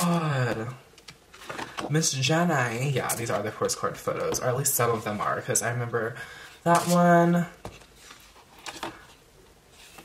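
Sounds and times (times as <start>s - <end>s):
photo cards rustling and sliding: 0.0s - 5.4s, 6.7s - 10.0s.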